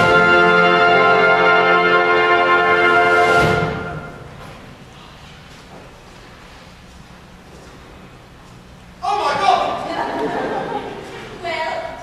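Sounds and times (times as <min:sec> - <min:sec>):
pit orchestra brass chord: 0:00.0 - 0:04.4.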